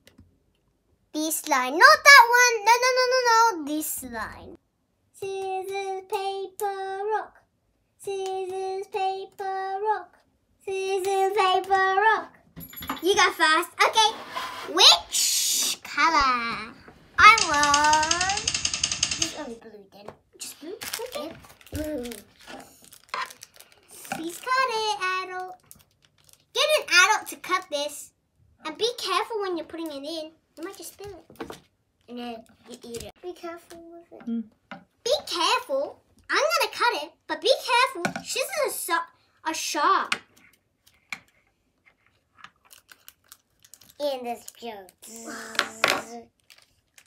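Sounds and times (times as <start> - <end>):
child singing drawn-out syllables: 45.0 - 46.2.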